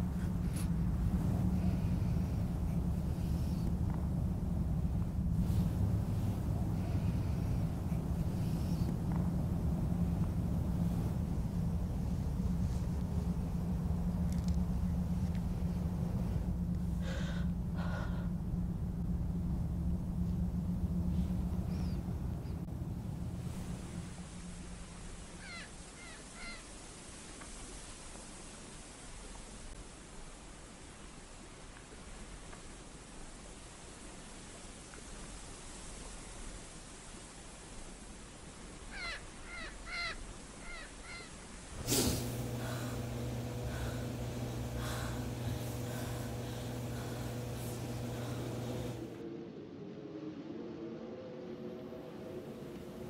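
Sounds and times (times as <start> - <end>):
low rumble: 0.0 - 25.9, 41.6 - 50.0
low steady hum: 0.0 - 53.0
steady background hiss: 0.0 - 53.0
woman gasping: 17.0 - 18.5, 41.8 - 49.0
bird calling: 25.4 - 26.7, 38.9 - 41.4.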